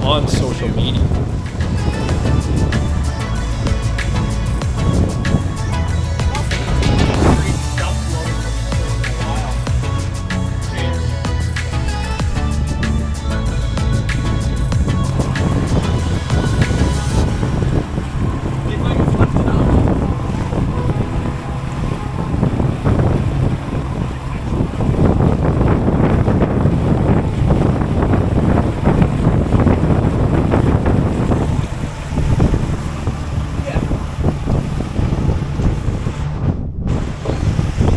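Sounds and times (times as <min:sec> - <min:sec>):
background music: 0:00.0 - 0:24.8
outboard motor: 0:00.0 - 0:37.9
water rushing past hull: 0:00.0 - 0:37.9
wind buffeting microphone: 0:00.0 - 0:37.9.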